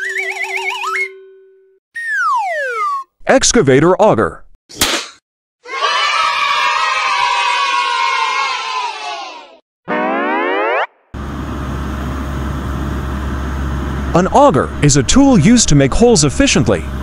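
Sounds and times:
cartoon cheer: 5.6 - 10.9
rising boing: 9.9 - 11.1.

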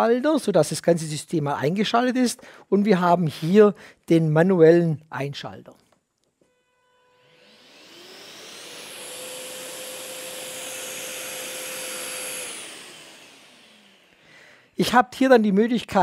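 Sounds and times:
vacuum extractor motor whine: 6.5 - 14.3.

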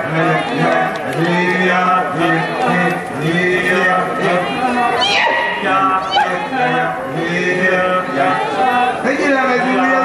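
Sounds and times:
voices chanting together: 0.0 - 9.1
high cry sliding down: 5.0 - 6.7.

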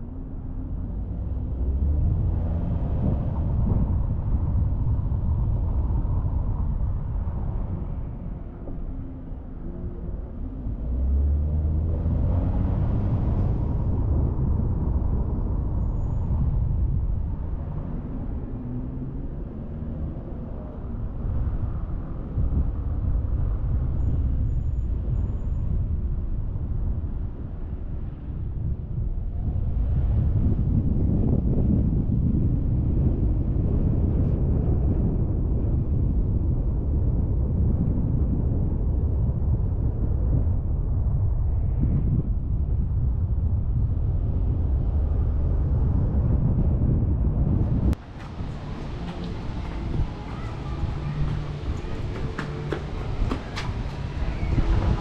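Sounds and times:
road traffic rumble: 0.0 - 55.0
passing vehicle engine: 10.6 - 22.6, 47.5 - 55.0.

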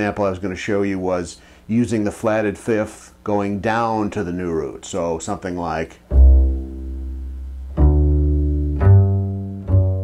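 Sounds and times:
plucked double bass: 6.1 - 10.0.

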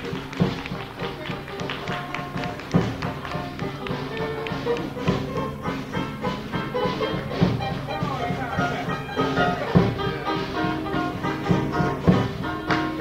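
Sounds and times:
jazz band with horns: 0.0 - 13.0.

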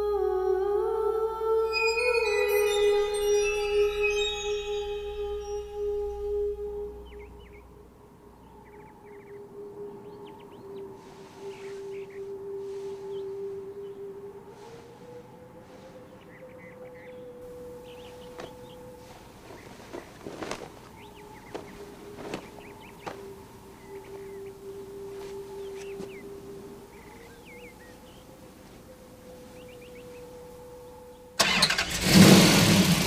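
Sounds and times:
eerie musical drone: 0.0 - 32.3
small birds chirping: 1.7 - 31.4.

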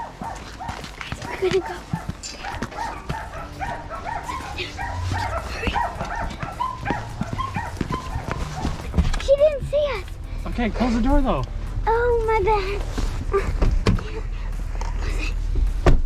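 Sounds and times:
dogs barking: 0.0 - 9.5
knocks and thuds: 5.6 - 9.8, 15.6 - 16.0.

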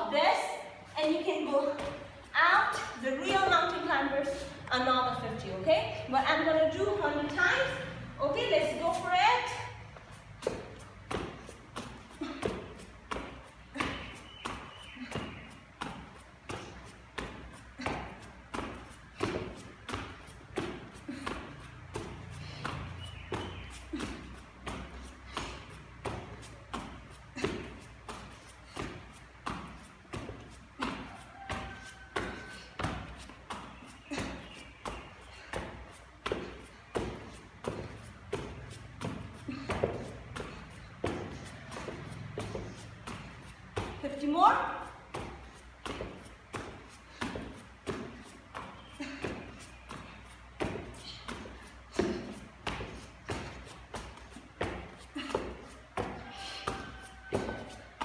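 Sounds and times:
bare feet thudding on mat: 0.6 - 58.0.

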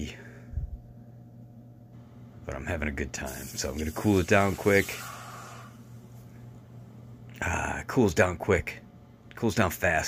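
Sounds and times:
hot metal hissing in water: 3.3 - 6.0.

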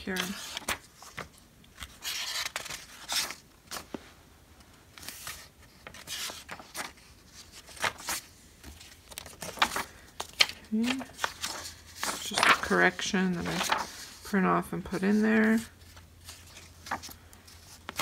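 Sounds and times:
paper pages turning: 0.0 - 4.0, 4.9 - 14.3, 14.9 - 18.0.

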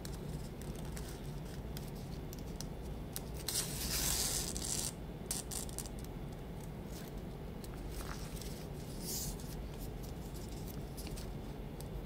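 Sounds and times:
ribbon rustling and crinkling: 6.9 - 11.4.

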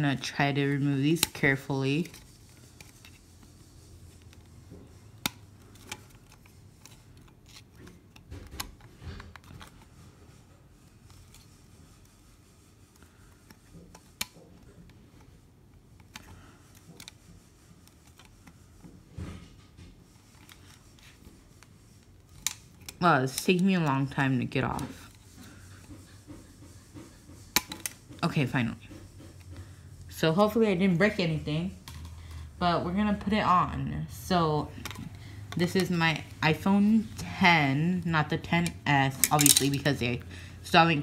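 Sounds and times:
plastic phone case clicks and scrapes: 1.0 - 10.0, 12.9 - 26.0, 27.4 - 28.2, 31.8 - 32.3, 38.4 - 39.9.

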